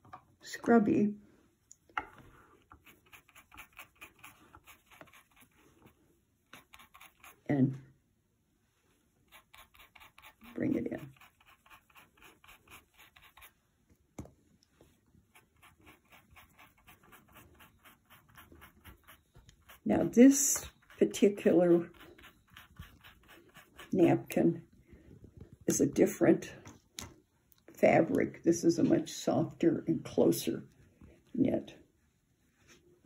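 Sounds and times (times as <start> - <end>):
paintbrush scratching on fabric: 2.4 - 7.5, 9.2 - 13.6, 15.2 - 24.4.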